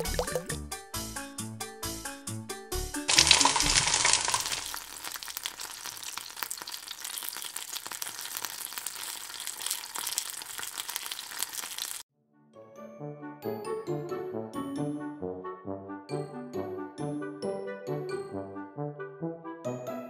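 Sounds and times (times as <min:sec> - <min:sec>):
hot oil sizzling: 0:03.1 - 0:12.0.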